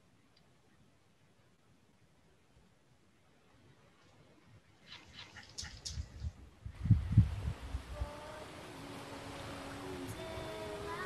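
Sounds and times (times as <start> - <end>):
steady hiss: 3.3 - 11.0.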